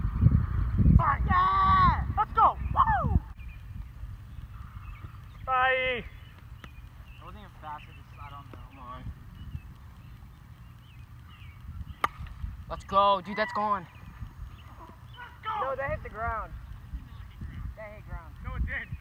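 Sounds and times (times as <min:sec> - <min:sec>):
steady low rumble: 0:00.0 - 0:13.2
distant voices: 0:01.0 - 0:19.0
plastic bat hitting ball: 0:12.0 - 0:12.3.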